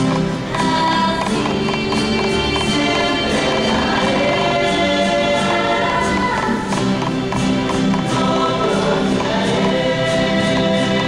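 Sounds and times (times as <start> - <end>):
plucked double bass: 0.0 - 11.0
strummed guitars: 0.0 - 11.0
choir singing in harmony: 0.1 - 11.0.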